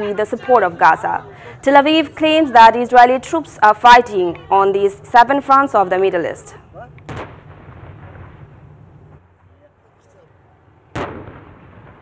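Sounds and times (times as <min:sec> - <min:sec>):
howitzer firing: 0:10.9 - 0:12.0.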